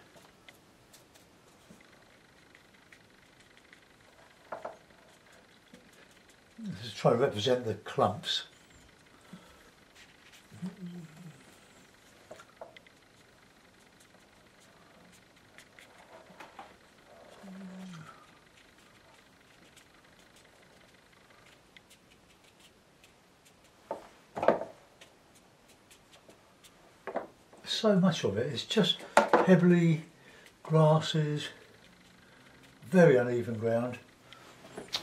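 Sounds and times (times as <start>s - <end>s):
low hummed voice: 6.5s - 8.5s, 10.5s - 11.8s, 17.1s - 18.4s
brush scratching on paper: 18.3s - 24.1s, 24.9s - 26.9s.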